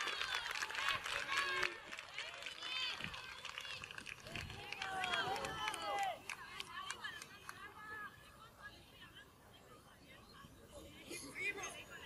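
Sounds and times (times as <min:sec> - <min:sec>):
women shouting and cheering: 0:00.0 - 0:09.2.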